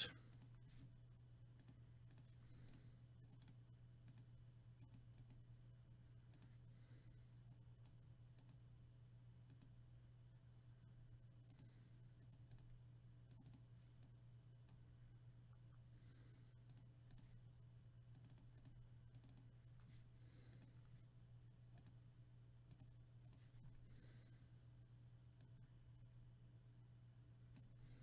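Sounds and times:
mouse and keyboard clicks: 0:01.6 - 0:05.4.

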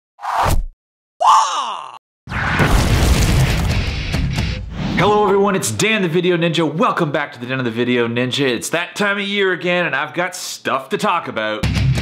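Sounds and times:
groan-like tone: 0:01.2 - 0:02.0.

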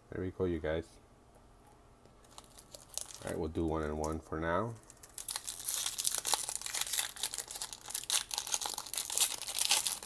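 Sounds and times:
foil wrappers crinkling: 0:02.2 - 0:10.0.

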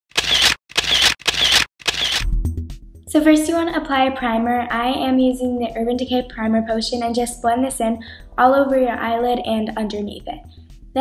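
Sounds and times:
camera shutter clicks: 0:00.1 - 0:02.2.

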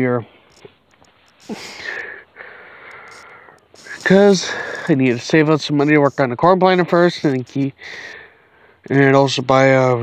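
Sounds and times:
person breathing softly: 0:01.4 - 0:03.6, 0:04.4 - 0:04.9, 0:07.8 - 0:08.9.

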